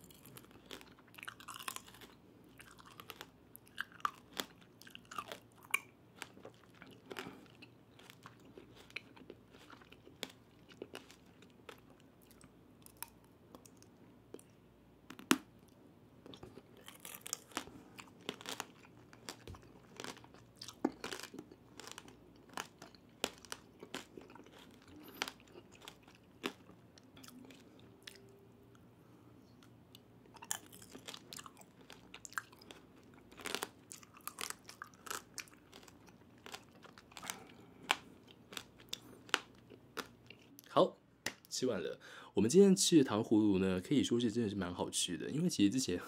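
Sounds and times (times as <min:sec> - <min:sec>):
hard candy crunching: 0:00.0 - 0:14.5, 0:15.1 - 0:28.2, 0:30.3 - 0:40.7
wet chewing: 0:00.0 - 0:15.4, 0:16.2 - 0:28.3, 0:30.4 - 0:40.7.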